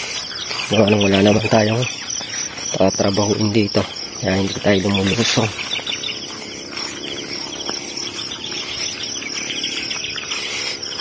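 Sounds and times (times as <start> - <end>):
birds chirping: 0.0 - 11.0
high insect drone: 0.0 - 11.0.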